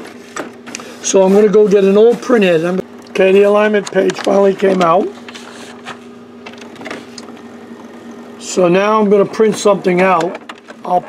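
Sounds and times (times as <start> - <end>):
printer humming: 0.0 - 11.0
faint printer clicks: 3.0 - 5.4.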